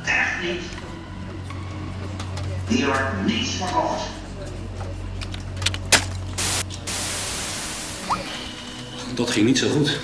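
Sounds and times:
electronic static hiss: 6.4 - 8.8.

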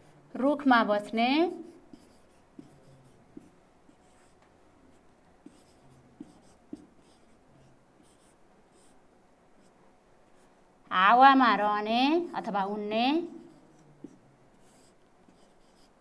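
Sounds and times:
marker strokes on whiteboard: 1.3 - 9.0, 12.1 - 16.0.

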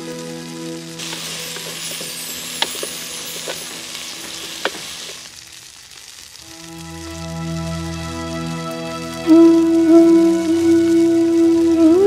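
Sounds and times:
soft music: 0.0 - 5.6, 6.4 - 12.0
food sizzling in a pot: 0.0 - 12.0.

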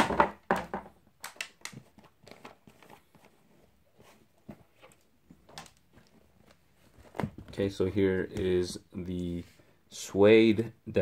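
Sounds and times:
packaging rustling: 1.2 - 7.6.

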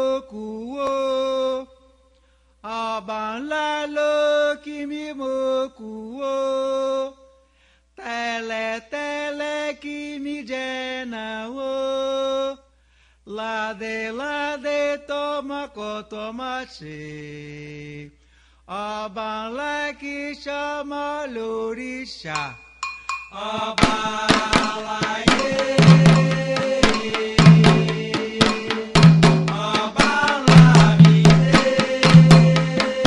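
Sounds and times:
hand drums striking: 22.4 - 33.0
solo voice chanting: 23.3 - 33.0.

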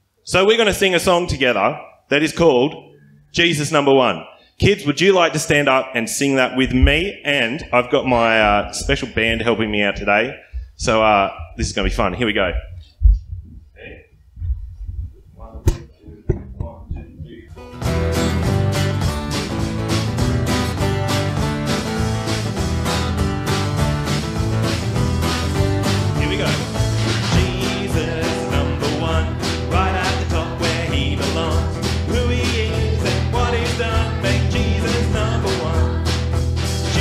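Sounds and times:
drum kit: 6.6 - 7.2, 14.4 - 37.0
quiet knocks: 15.6 - 17.5
acoustic guitar strumming: 17.5 - 37.0
man singing: 26.2 - 36.1.

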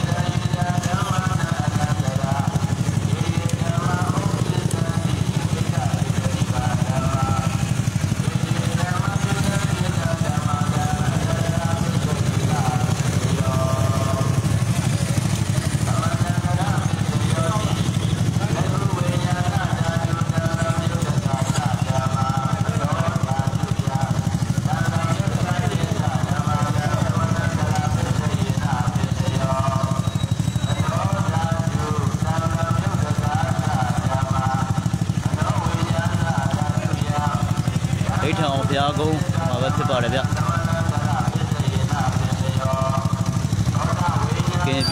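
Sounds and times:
motorcycle engine running: 0.0 - 44.9
people calling out: 0.0 - 44.9.

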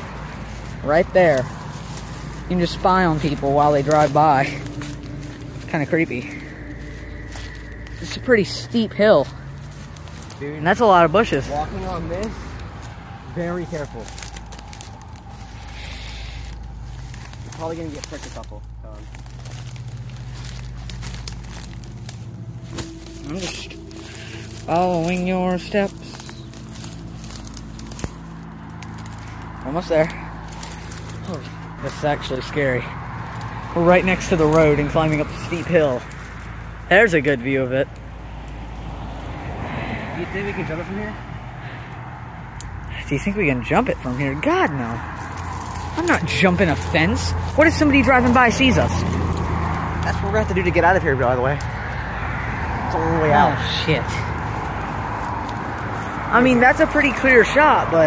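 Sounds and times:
steady low hum: 0.0 - 38.8
footsteps through tall grass: 0.0 - 58.0
road traffic rumble: 0.0 - 58.0.

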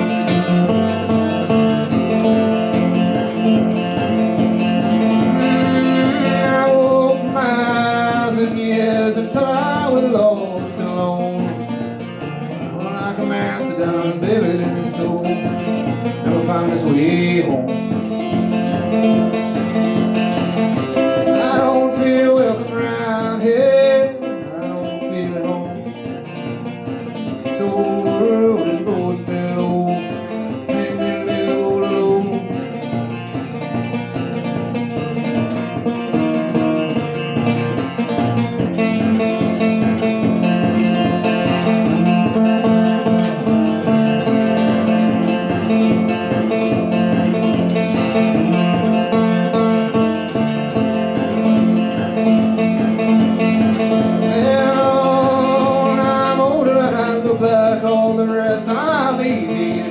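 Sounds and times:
resonator guitar fingerpicking: 0.0 - 59.9.

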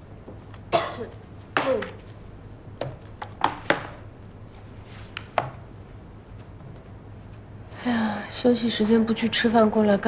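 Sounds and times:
person coughing: 0.7 - 2.0.

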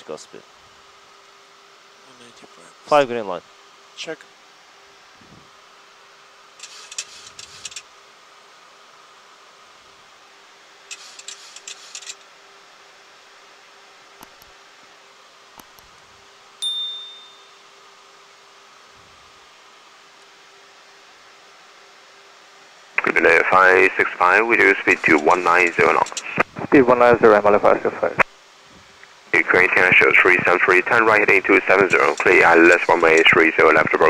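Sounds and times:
bright bell ding: 16.6 - 17.7
low cockpit hum: 23.0 - 28.3, 29.3 - 34.0
clusters of clicks: 26.0 - 26.3.

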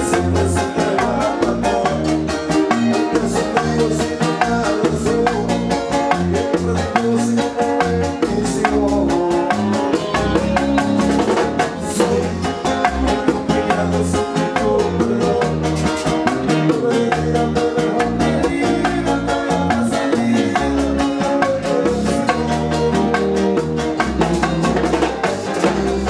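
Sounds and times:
live latin band music: 0.0 - 26.0
person singing: 0.0 - 26.0.

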